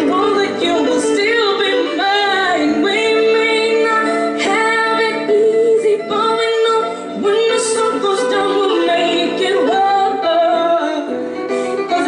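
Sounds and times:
electric guitars: 0:00.0 - 0:12.0
woman singing: 0:00.0 - 0:12.0.

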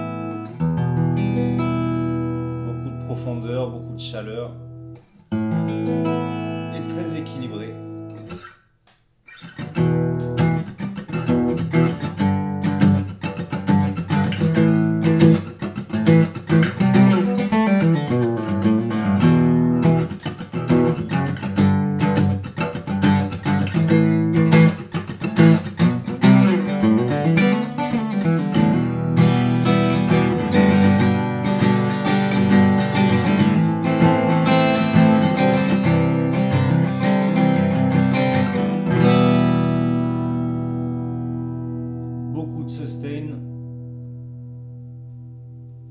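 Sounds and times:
fingerstyle acoustic guitar: 0:00.0 - 0:08.6, 0:09.2 - 0:45.9.

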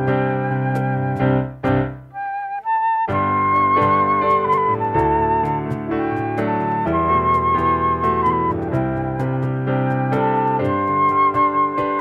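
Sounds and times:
keyboard chords: 0:00.0 - 0:02.3, 0:03.0 - 0:12.0
high melody line: 0:00.0 - 0:12.0.

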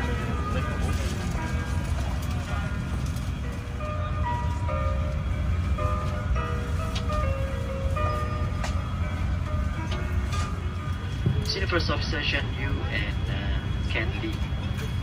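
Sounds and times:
faint voices: 0:00.0 - 0:04.8, 0:10.2 - 0:15.0
soft melodic music: 0:00.0 - 0:13.3
airliner cabin rumble: 0:00.0 - 0:15.0.

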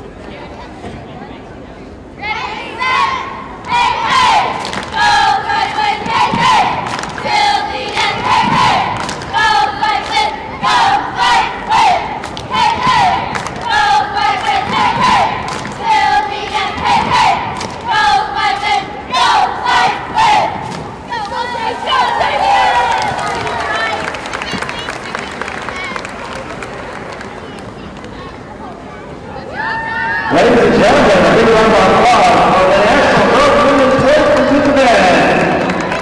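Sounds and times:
girls chanting a cheer: 0:02.2 - 0:24.9.

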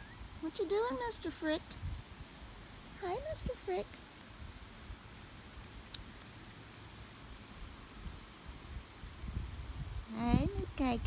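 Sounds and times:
wind rumble on microphone: 0:00.0 - 0:05.1, 0:07.4 - 0:11.0.

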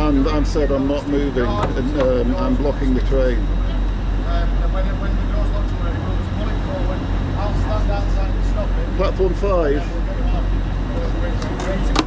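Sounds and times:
indistinct voices talking: 0:00.0 - 0:12.0
low hum of stationary train: 0:00.0 - 0:12.0.

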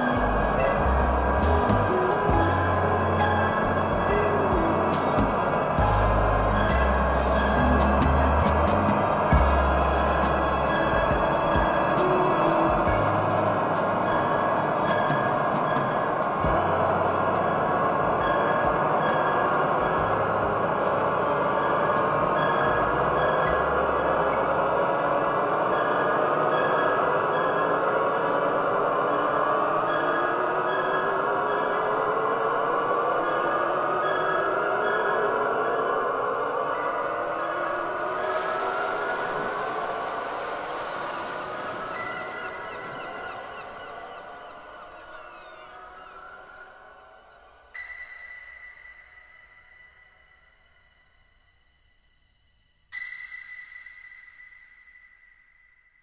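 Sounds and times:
drone of gliding tones: 0:00.0 - 0:56.0
pulsing high tone: 0:00.0 - 0:56.0.

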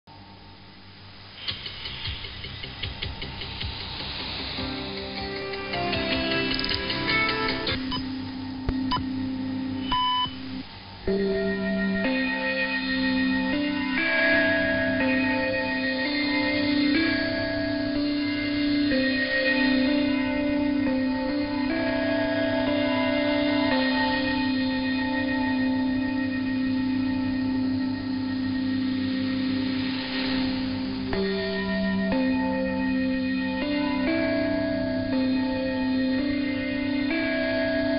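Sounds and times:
radio static hiss: 0:00.1 - 0:37.9
slow melody of ringing tones: 0:04.9 - 0:37.9.

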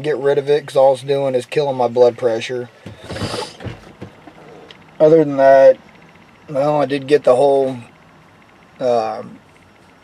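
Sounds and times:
light mechanical clicks: 0:04.2 - 0:10.0.

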